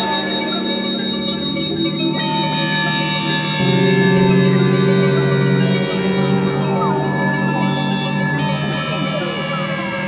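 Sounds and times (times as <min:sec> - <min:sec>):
ambient drone music: 0:00.0 - 0:10.0.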